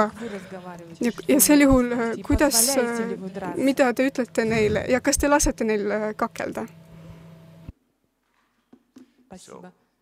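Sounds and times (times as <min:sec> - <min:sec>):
low electrical hum: 0:00.0 - 0:08.9.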